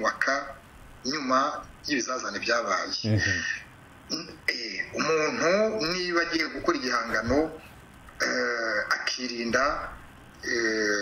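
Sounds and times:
man speaking: 0:02.8 - 0:03.6.

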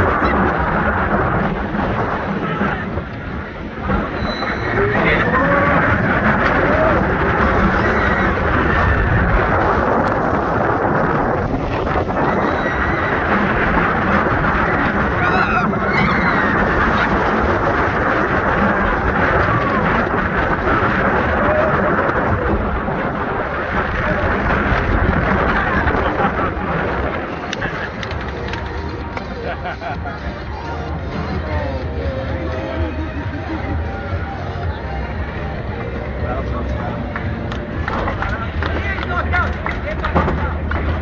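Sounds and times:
roller coaster rumbling on track: 0:00.0 - 0:41.0
wind rushing across microphone: 0:00.0 - 0:41.0.

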